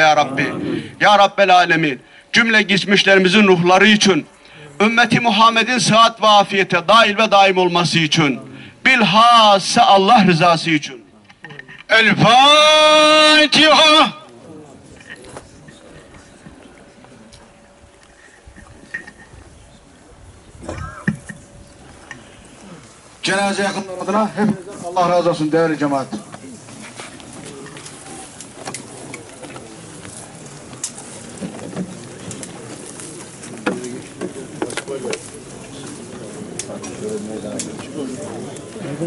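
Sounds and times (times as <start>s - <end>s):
murmur of men's voices: 0.0s - 18.0s, 19.7s - 39.0s
faint outdoor ambience: 0.0s - 39.0s
faint voice calling: 20.6s - 21.2s
dove cooing: 20.6s - 23.2s.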